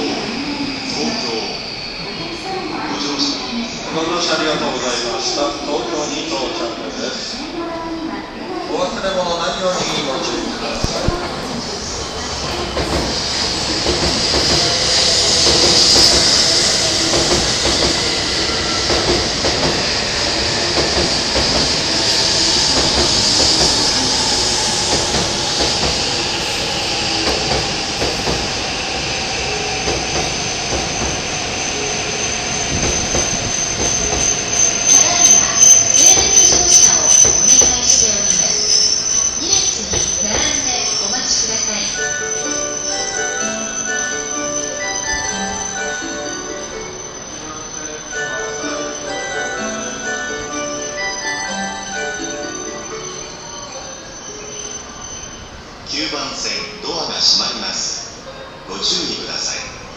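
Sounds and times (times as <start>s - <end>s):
train wheels rushing on rail: 8.4s - 43.6s
wheel squeal: 12.4s - 45.7s, 53.4s - 55.7s
thin high-pitched pulsing squeal: 12.4s - 55.7s.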